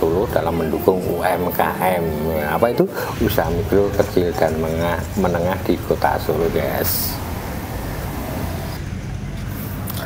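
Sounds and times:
faint voices: 0.0 - 10.0.

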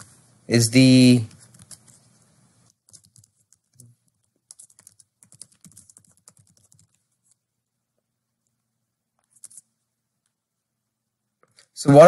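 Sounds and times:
computer keyboard typing: 1.3 - 7.4, 9.2 - 9.7.

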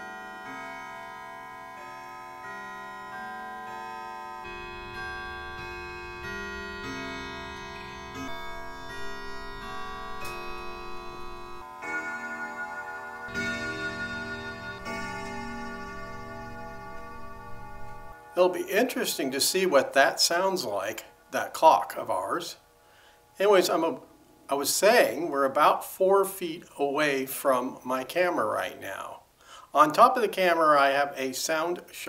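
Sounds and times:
clock chiming tune on bells: 0.0 - 21.5.

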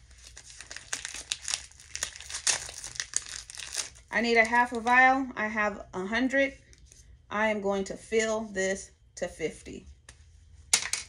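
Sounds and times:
wrapper tearing: 0.0 - 4.1
wrapper crinkling and rustling: 0.0 - 4.9.

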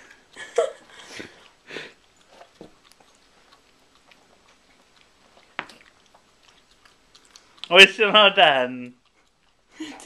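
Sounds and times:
dog licking and lip smacking: 0.0 - 10.0.

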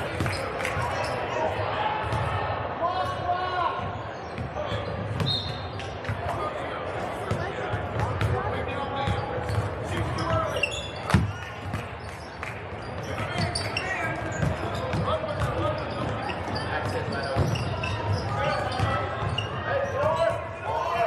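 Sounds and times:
sneaker squeaks: 0.0 - 1.4, 3.8 - 6.2, 9.0 - 20.6
chatter of voices: 5.9 - 21.0
basketball bouncing: 14.2 - 19.4.

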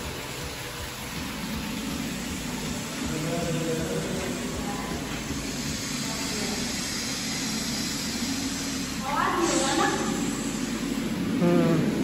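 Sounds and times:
hiss: 0.0 - 12.0.

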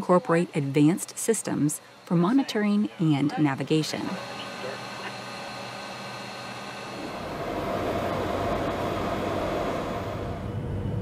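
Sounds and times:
aircraft engine and airflow noise: 0.0 - 11.0
faint equipment whines: 0.0 - 11.0.

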